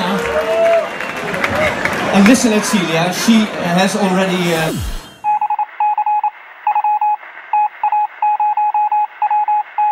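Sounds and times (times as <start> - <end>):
electronic beeps: 4.2 - 9.9.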